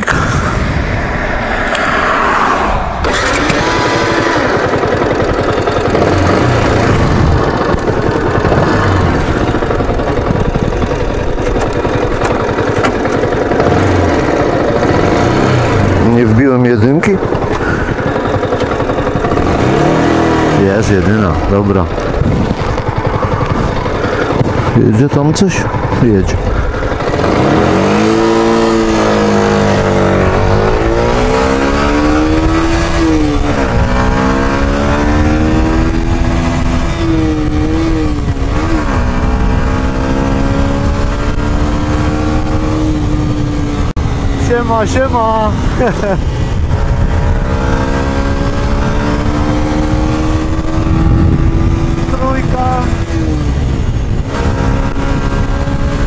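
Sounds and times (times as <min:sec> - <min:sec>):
wind noise on microphone: 0:00.0 - 0:04.7, 0:05.9 - 0:13.0, 0:17.1 - 0:56.0
motorcycle engine accelerating: 0:00.0 - 0:56.0.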